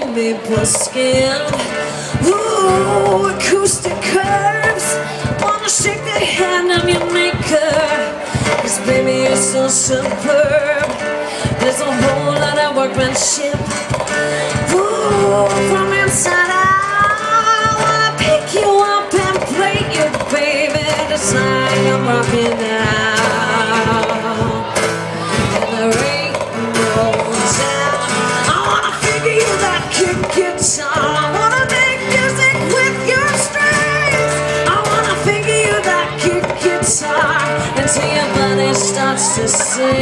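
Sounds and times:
strummed acoustic guitar: 0.0 - 40.0
woman singing: 0.0 - 40.0.

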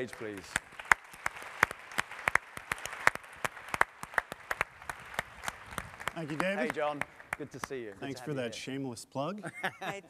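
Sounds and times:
audience applauding: 0.0 - 8.2.

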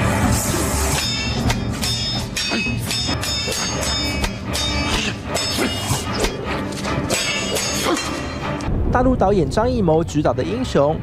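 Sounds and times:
film music: 0.0 - 11.0
metallic clangs of weapons striking: 0.9 - 8.4.

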